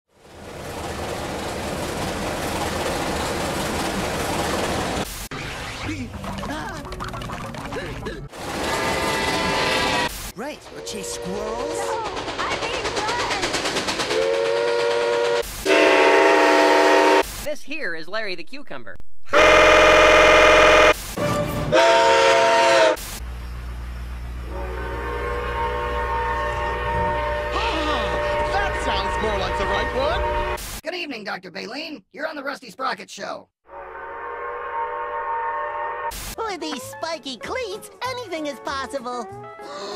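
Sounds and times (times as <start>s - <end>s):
steam locomotive whistle: 8.5s - 12.1s, 14.0s - 17.3s, 19.3s - 23.0s, 24.4s - 30.6s, 33.7s - 36.2s.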